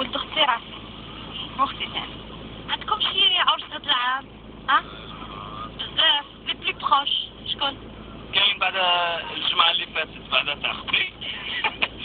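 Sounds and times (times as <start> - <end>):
steady radio hiss: 4.7 - 7.0, 7.6 - 12.0.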